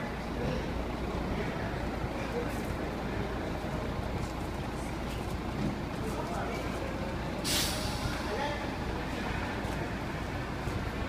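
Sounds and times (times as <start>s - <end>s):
vehicle rumble: 0.0s - 11.0s
air brake hiss: 7.4s - 8.3s.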